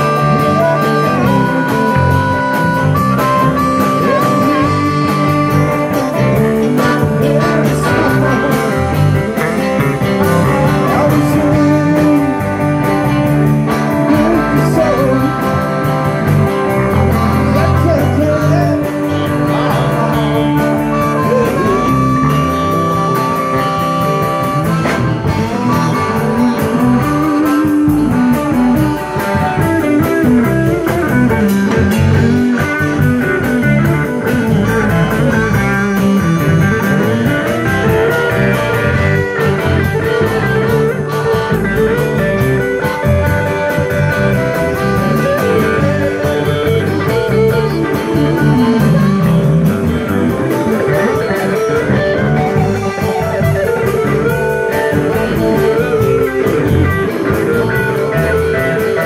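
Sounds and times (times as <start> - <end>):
drum kit: 0.0 - 59.0
electric bass: 0.0 - 59.0
electric guitars: 0.0 - 59.0.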